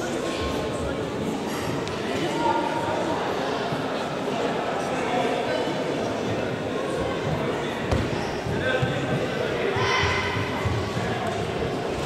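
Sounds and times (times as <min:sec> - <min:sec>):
echoing murmur of voices: 0:00.0 - 0:12.0.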